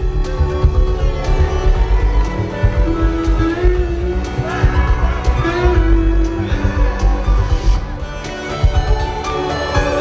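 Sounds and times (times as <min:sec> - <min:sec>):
drums with steady beat: 0:00.0 - 0:10.0
electric guitar: 0:00.0 - 0:10.0
heavy bass: 0:00.0 - 0:10.0.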